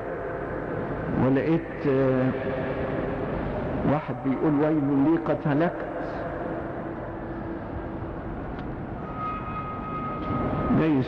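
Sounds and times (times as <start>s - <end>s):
recording hiss and rumble: 0.0s - 11.0s
man speaking: 1.1s - 2.4s, 3.8s - 6.1s, 10.7s - 11.0s
thin whistle-like tone: 9.0s - 10.8s.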